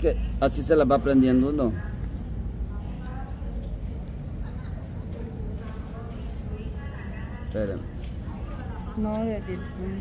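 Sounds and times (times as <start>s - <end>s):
low street rumble: 0.0s - 10.0s.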